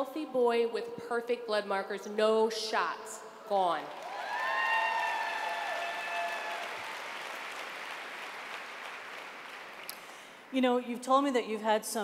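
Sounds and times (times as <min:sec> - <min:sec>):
audience applauding: 0:04.0 - 0:10.0.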